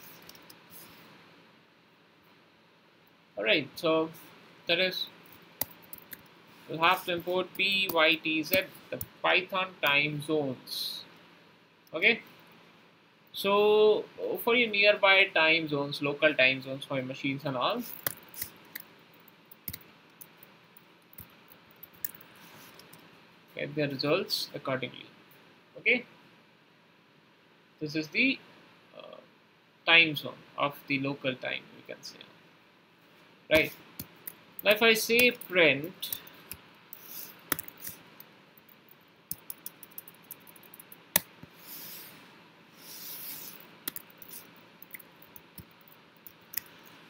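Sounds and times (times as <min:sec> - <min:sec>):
soft hiss: 0:00.0 - 0:47.0
computer keyboard typing: 0:05.6 - 0:06.3, 0:17.8 - 0:18.9, 0:19.6 - 0:20.5, 0:21.1 - 0:23.0, 0:33.6 - 0:38.0, 0:38.9 - 0:41.4, 0:43.4 - 0:47.0
keyboard keys clicking: 0:37.5 - 0:38.0, 0:39.3 - 0:41.3, 0:43.9 - 0:46.7.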